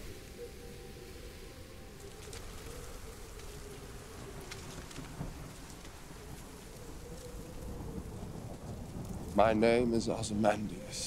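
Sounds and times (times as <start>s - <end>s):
steady rain: 0.0s - 11.0s
low rumble of thunder: 2.4s - 11.0s.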